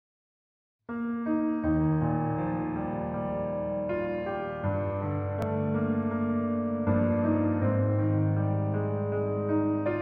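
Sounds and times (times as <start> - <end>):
slow piano accompaniment: 0.9 - 10.0.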